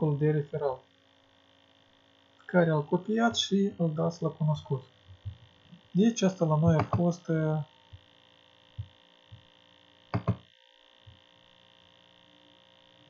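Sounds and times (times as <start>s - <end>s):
electrical hum and hiss: 0.0s - 13.0s.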